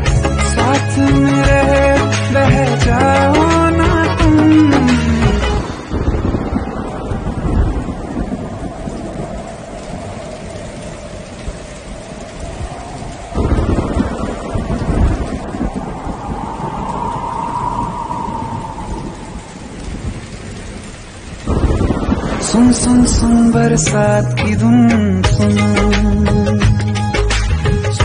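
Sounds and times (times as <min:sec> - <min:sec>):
thunder rumbling: 0:00.0 - 0:26.7
heavy rain falling: 0:00.0 - 0:28.0.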